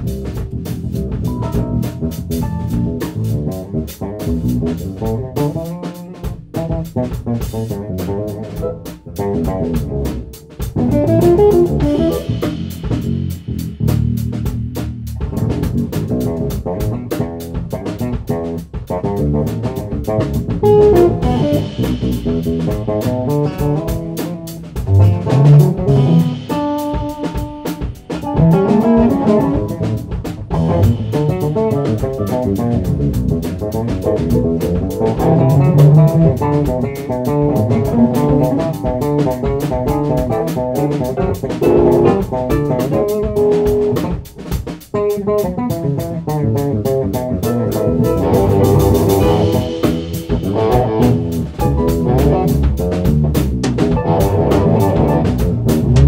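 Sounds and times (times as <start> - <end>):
electric guitar: 0.0 - 13.2, 15.2 - 56.0
bass guitar: 0.0 - 56.0
drum kit beat: 0.0 - 56.0.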